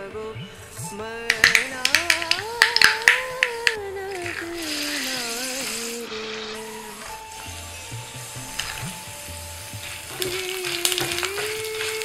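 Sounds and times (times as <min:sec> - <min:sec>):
mustard seeds popping in hot oil: 0:01.3 - 0:05.4, 0:09.7 - 0:12.0.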